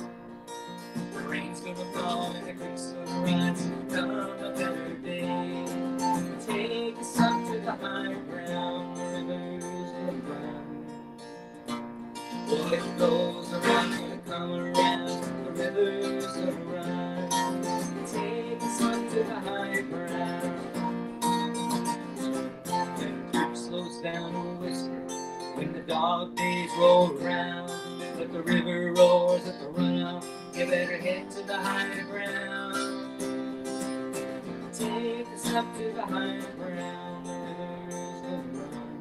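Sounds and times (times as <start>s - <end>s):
acoustic guitar strumming: 0.0s - 39.0s.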